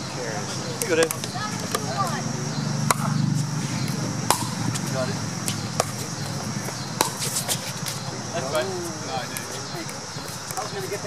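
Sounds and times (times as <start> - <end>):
paddles striking ball: 2.8 - 8.1.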